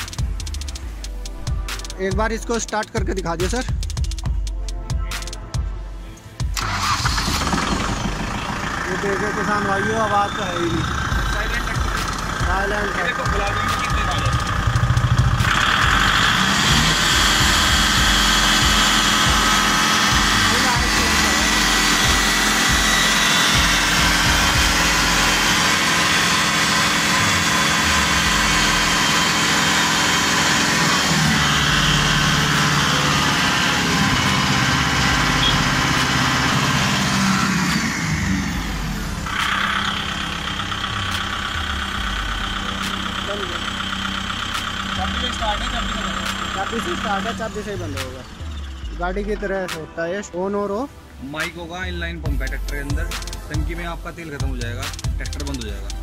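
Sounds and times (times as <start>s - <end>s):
tractor diesel engine running: 0.0s - 49.7s.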